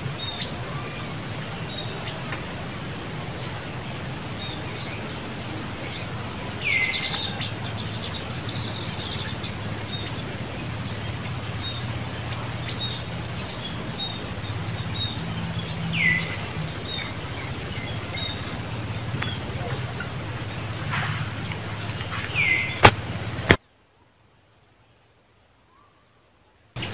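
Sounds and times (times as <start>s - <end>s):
downward-sweeping bird calls: 0.0s - 23.4s
low background hum: 0.0s - 23.6s
birds chirping: 0.0s - 26.9s.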